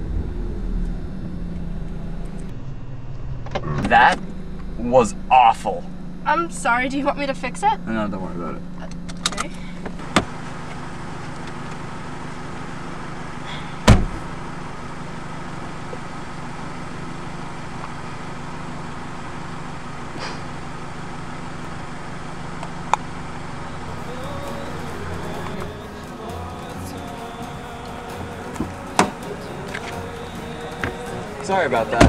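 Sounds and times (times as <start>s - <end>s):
car engine idling: 0.0s - 32.0s
car door slamming: 13.8s - 14.3s, 28.3s - 30.1s.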